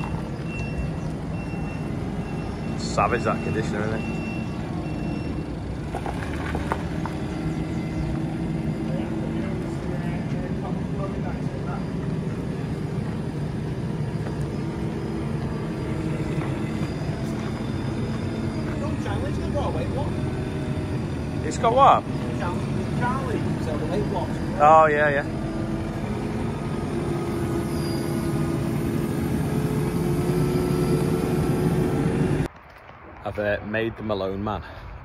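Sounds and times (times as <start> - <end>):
diesel engine running: 0.0 - 32.5.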